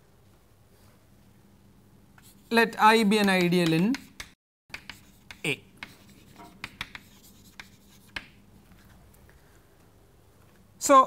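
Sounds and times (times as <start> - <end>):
chalk tapping and scraping on blackboard: 2.2 - 8.9.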